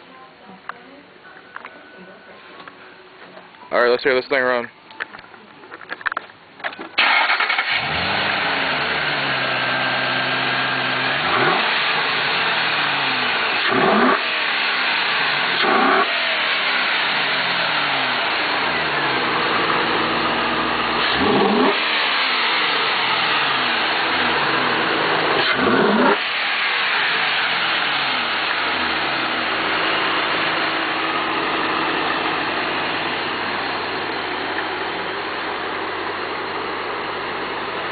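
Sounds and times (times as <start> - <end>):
car engine starting and revving: 7.0 - 34.5.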